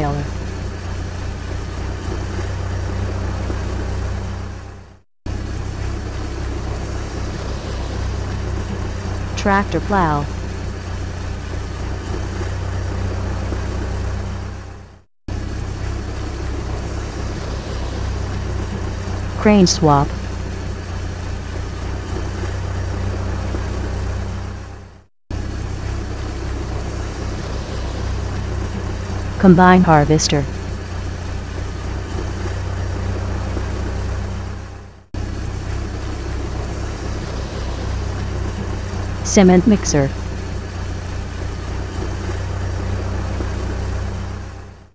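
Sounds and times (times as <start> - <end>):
vehicle engine idling: 0.0 - 44.9.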